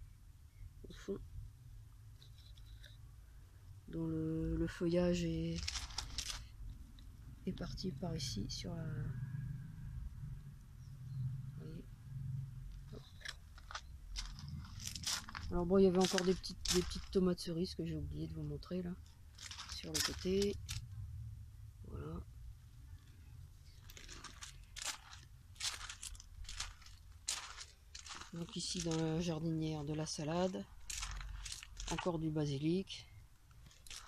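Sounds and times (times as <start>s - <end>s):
low steady rumble: 0.0s - 34.0s
dry rustling and crackling: 4.7s - 7.8s, 12.7s - 20.9s, 22.9s - 34.0s.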